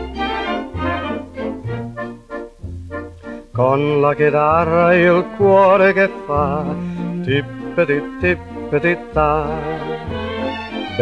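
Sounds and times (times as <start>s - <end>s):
orchestral chords over bass line: 0.0s - 11.0s.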